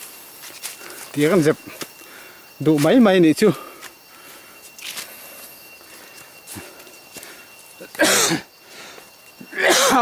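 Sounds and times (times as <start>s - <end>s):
footsteps on dry leaves and twigs: 0.0s - 8.0s.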